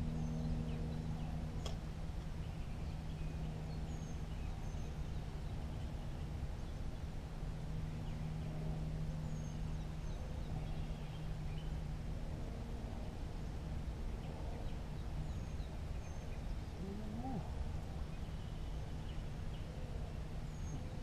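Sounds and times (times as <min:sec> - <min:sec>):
small birds chirping: 0:00.0 - 0:12.1, 0:13.3 - 0:21.0
low hum: 0:00.0 - 0:21.0
rumbling background noise: 0:00.0 - 0:21.0.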